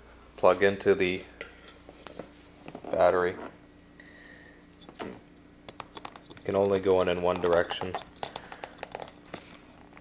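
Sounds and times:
plastic connector clicking and rubbing: 5.7 - 9.4.

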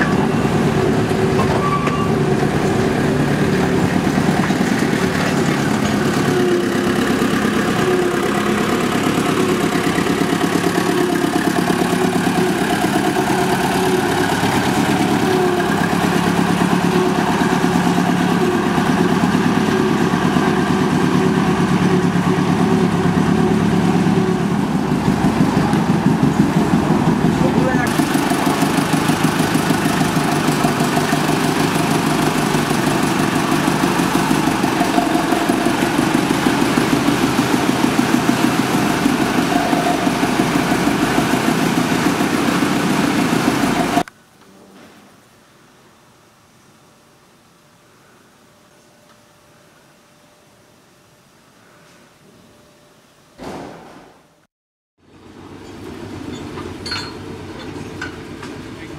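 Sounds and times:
diesel locomotive engine running: 0.0 - 44.1, 55.1 - 58.9.

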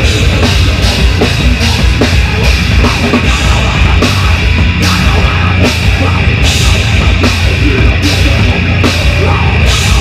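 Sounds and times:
metal band playing loud: 0.0 - 10.0.

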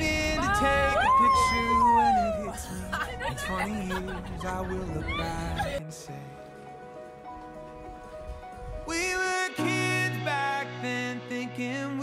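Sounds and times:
background music: 0.0 - 12.0
long howl: 0.3 - 2.6.

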